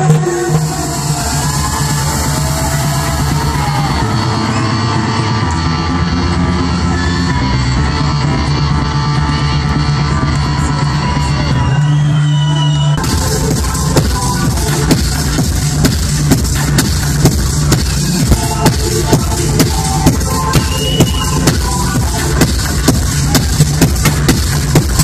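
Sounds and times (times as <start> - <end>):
electronic dance music: 0.0 - 25.0.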